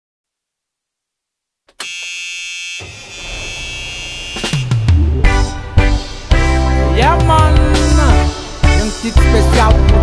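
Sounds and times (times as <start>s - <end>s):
buzzy electronic tone: 2.3s - 6.6s.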